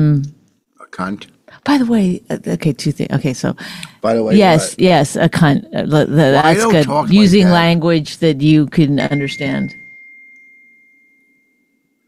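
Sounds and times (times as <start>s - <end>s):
faint high-pitched tone: 9.1s - 12.0s.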